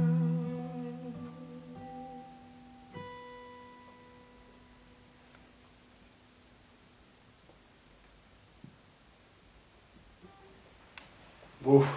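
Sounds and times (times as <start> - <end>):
faint click: 10.9 - 11.2.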